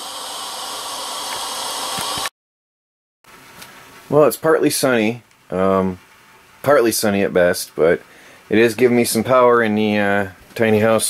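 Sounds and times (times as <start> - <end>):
steady hiss: 0.0 - 2.3, 3.3 - 11.0.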